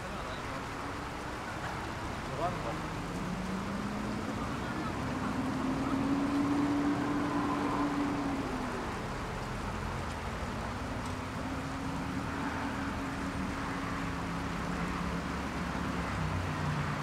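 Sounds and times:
city traffic rumble: 0.0s - 17.0s
vehicle engine passing: 2.4s - 10.0s.

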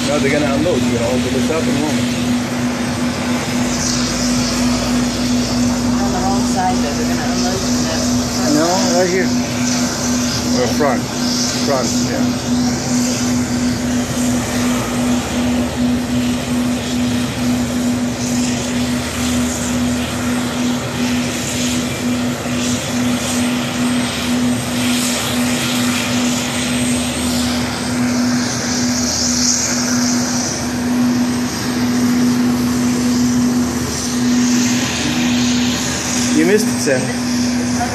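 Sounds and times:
hovercraft roaring: 0.0s - 37.9s.

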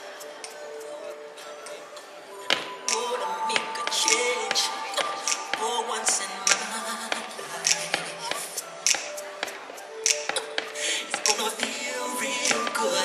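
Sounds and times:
music playing: 0.0s - 13.0s.

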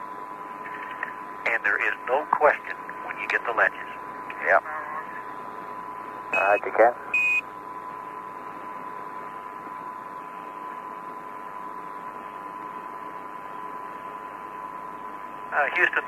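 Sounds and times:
faint constant tone: 0.0s - 16.0s
radio hiss: 0.6s - 5.7s, 6.4s - 7.1s, 15.5s - 16.0s
short radio beep: 6.4s - 7.4s.

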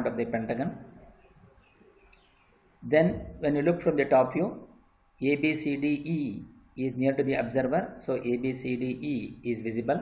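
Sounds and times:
man's voice: 2.8s - 4.6s.

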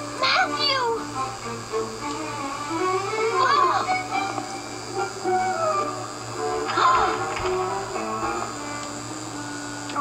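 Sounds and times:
cartoon soundtrack through laptop speakers: 0.0s - 10.0s.

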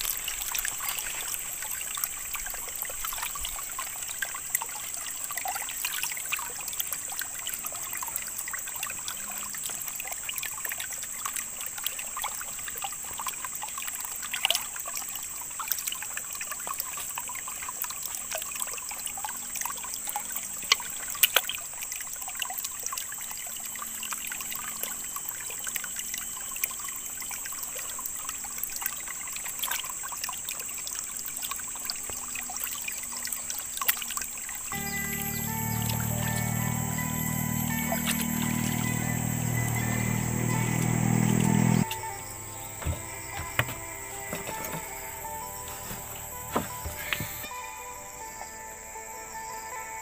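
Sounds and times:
stream water trickling: 0.0s - 50.0s
loud steady sound: 34.7s - 43.0s
music playing: 34.7s - 50.0s.

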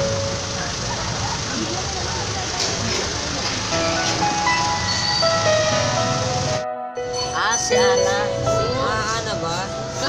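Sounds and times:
outdoor noise hiss: 0.0s - 6.6s
simple melody of held notes: 3.7s - 10.0s.

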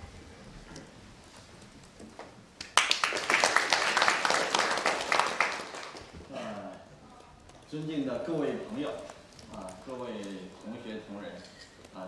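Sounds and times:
audience applauding: 2.6s - 6.3s.

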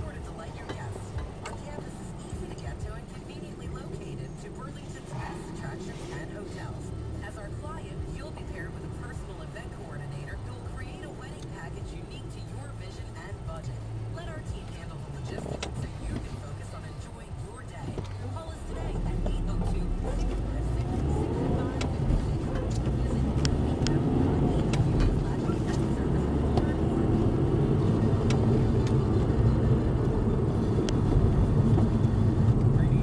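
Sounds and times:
car engine idling: 0.0s - 33.0s.

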